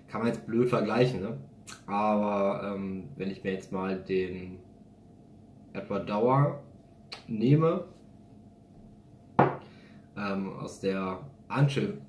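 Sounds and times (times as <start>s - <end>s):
glass knock on tabletop: 9.4s - 9.6s.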